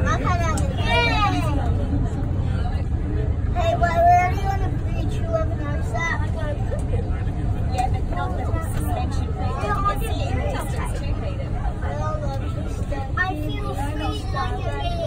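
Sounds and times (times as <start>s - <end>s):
metro train rumbling on track: 0.0s - 15.0s.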